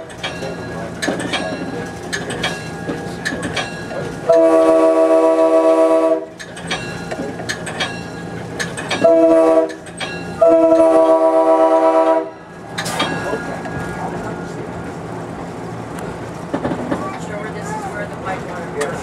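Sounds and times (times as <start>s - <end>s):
wheels clicking over rail joints: 0.0s - 5.4s, 6.2s - 19.0s
train air horn blasts: 4.3s - 6.4s, 9.0s - 9.8s, 10.4s - 12.4s.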